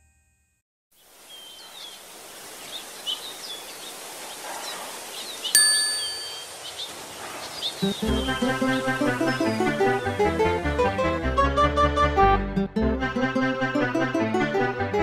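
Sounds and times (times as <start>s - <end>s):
small birds chirping: 1.0s - 10.4s
steady outdoor hiss: 1.0s - 10.4s
bell-like ding: 5.6s - 6.6s.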